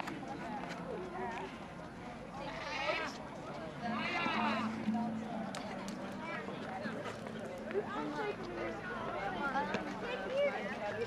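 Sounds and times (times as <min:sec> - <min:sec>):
people's voices in a street: 0:00.0 - 0:11.0.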